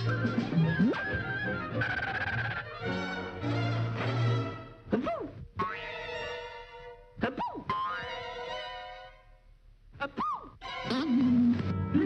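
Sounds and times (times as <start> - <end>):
orchestral cartoon music: 0.0 - 4.9, 5.7 - 9.4.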